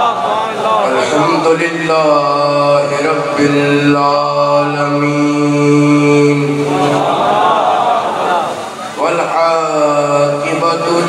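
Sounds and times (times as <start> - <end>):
man chanting over loudspeaker: 0.0 - 7.1, 8.9 - 11.0.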